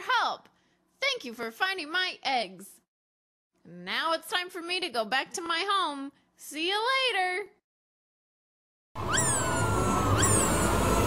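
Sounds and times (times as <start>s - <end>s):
high-pitched sweeping calls: 9.0s - 11.0s
loud rushing roar: 9.0s - 11.0s.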